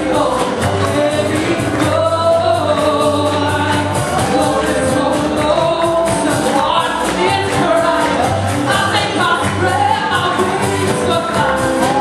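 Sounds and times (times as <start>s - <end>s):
instrumental accompaniment: 0.0s - 12.0s
woman singing into microphone: 0.0s - 12.0s.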